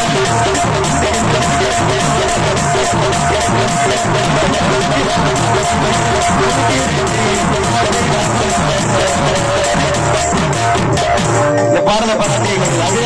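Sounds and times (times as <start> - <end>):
barrel drum beating: 0.0 - 13.0
electronic keyboard: 0.0 - 13.0.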